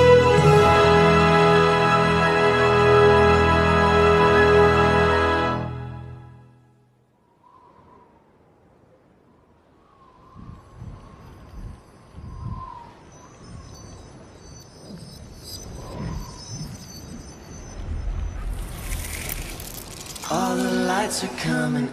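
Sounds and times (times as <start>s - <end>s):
tinkling chime-like shimmer: 10.5s - 21.1s.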